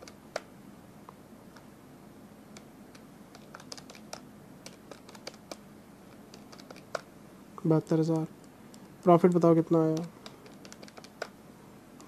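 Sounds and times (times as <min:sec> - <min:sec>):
calculator keys clicking: 0:02.6 - 0:05.6, 0:06.3 - 0:07.1, 0:09.8 - 0:11.3.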